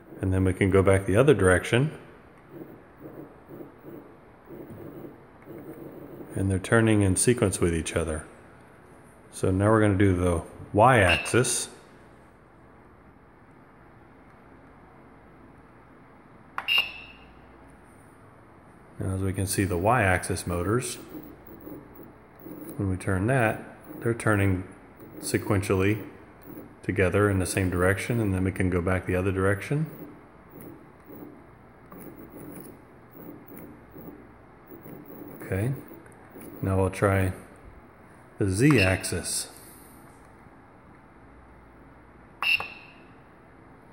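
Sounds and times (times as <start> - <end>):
faint room hiss: 17.2 - 42.4
stepper motors buzzing: 20.4 - 28.4, 29.6 - 36.8.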